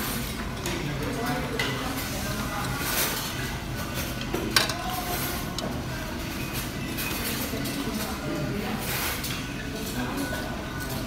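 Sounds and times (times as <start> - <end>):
restaurant room hum: 0.0 - 11.0.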